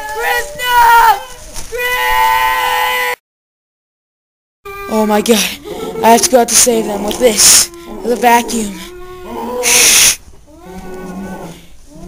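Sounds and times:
low moan: 6.8s - 12.0s
boy sighing: 9.6s - 10.2s.

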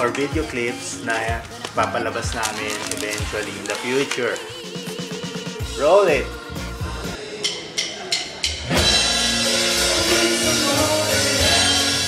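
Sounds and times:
rock band playing: 8.5s - 12.0s.

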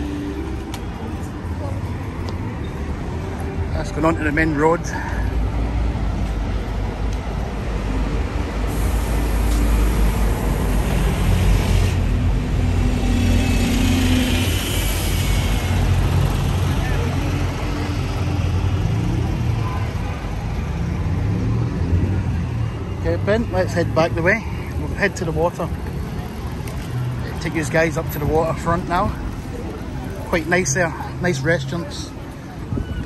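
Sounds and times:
bus engine rumbling: 0.0s - 33.0s
road traffic: 0.0s - 33.0s.

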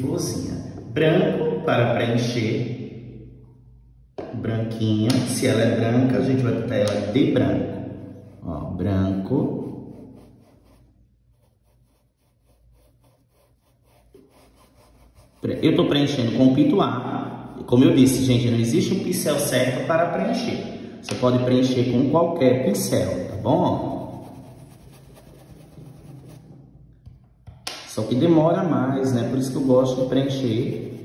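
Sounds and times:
paintbrush rubbing cloth: 8.0s - 19.0s, 22.6s - 26.6s, 29.2s - 31.0s.

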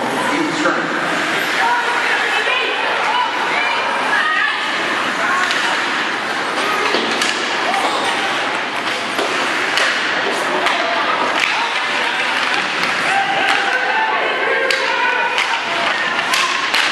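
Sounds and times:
spectators chattering: 0.0s - 16.9s
hockey sticks and puck clacking: 4.6s - 16.9s.

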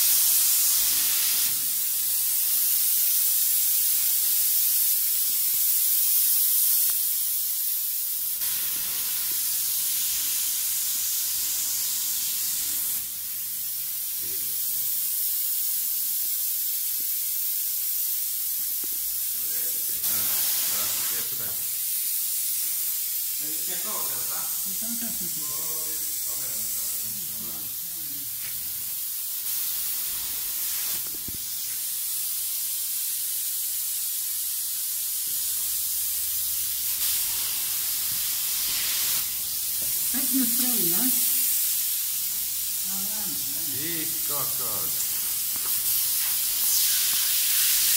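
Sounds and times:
spray foam gun hissing: 0.0s - 47.9s.

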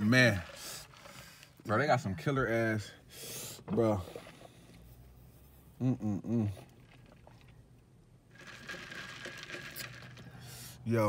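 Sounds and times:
rustling crinkling noise: 0.0s - 1.8s, 6.6s - 10.3s.

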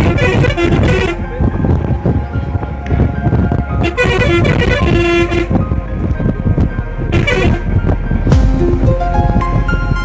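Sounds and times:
music playing: 0.0s - 10.0s
vehicle engine and road rumble: 0.0s - 10.0s.

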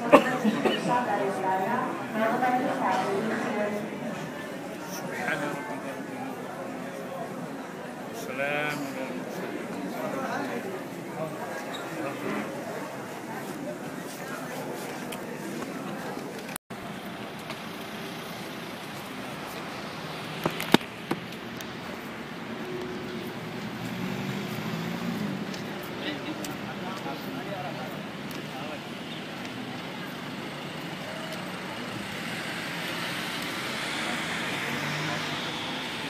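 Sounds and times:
road traffic: 0.0s - 36.0s
vehicle passing: 17.8s - 27.8s, 30.2s - 36.0s.

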